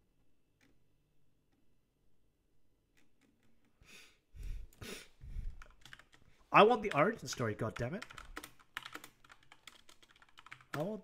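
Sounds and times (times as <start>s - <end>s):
computer keyboard keystrokes: 5.5s - 6.2s, 6.8s - 11.0s.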